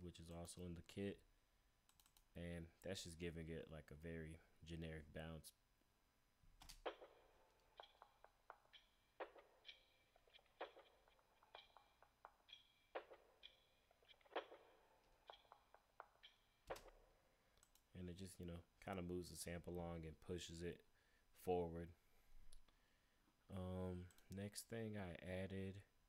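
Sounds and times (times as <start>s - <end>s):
electronic percussion loop: 6.8s - 17.0s.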